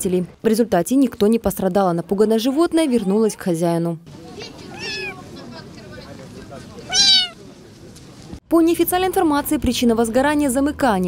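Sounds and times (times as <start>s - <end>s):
kitten meowing: 4.7s - 5.2s, 6.9s - 7.4s.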